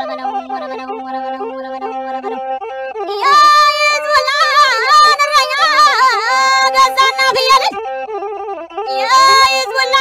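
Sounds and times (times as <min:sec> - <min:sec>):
high wavering ornamented voice: 0:00.0 - 0:10.0.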